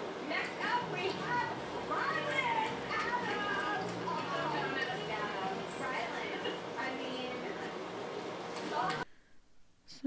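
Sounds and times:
women talking and laughing on tv: 0:00.2 - 0:07.8.

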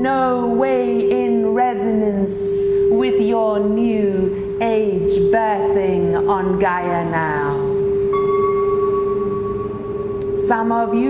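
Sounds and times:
held drone tone: 0:00.0 - 0:11.0
bell-like chime: 0:07.8 - 0:10.5.

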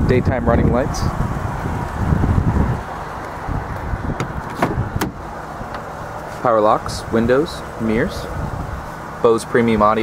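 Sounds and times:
wind rumbling on microphone: 0:00.0 - 0:09.1
car door latch clicks: 0:04.2 - 0:05.9.

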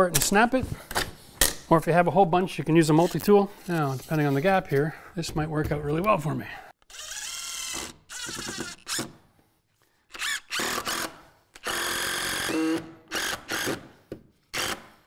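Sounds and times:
impact driver driving a screw: 0:06.9 - 0:09.2, 0:10.1 - 0:13.9.

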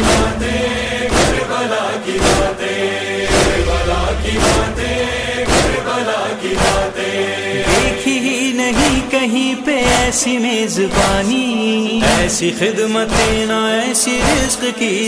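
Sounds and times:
deep beat: 0:00.0 - 0:01.6, 0:03.2 - 0:06.0, 0:07.5 - 0:08.2
chorus chanting held line: 0:00.0 - 0:09.2.

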